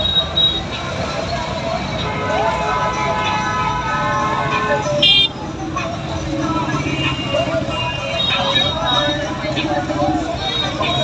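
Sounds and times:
street crowd chatter: 0.0 - 11.0
vehicle engines rumbling: 0.0 - 11.0.

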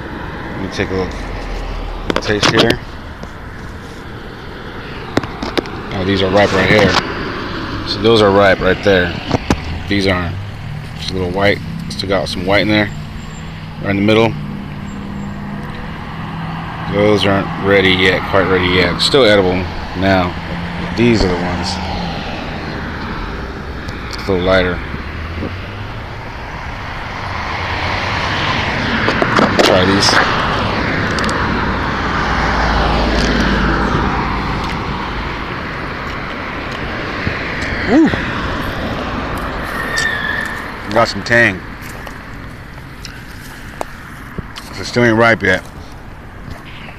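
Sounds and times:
aircraft engine rushing overhead: 0.0 - 42.4.

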